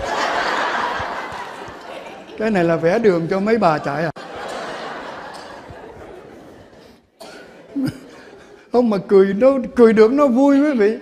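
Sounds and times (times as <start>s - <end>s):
audience laughing: 0.0s - 8.7s.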